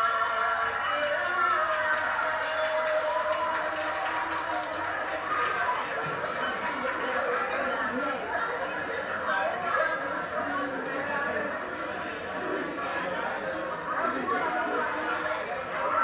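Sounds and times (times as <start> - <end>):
voices talking over one another: 0.0 - 16.0.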